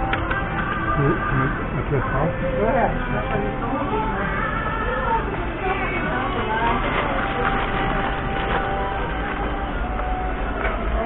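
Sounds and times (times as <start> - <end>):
busy market din: 0.0 - 11.0.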